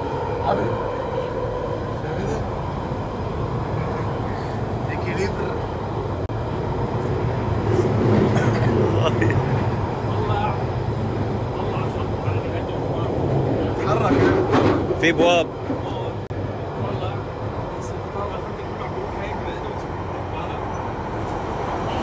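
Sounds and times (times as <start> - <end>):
faint passenger voices: 0.0 - 6.2, 7.7 - 22.0
underground train rumble: 0.0 - 22.0.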